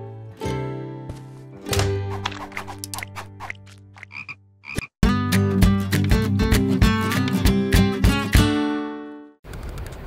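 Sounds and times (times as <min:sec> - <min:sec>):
cartoon frogs croaking: 0:04.0 - 0:04.9.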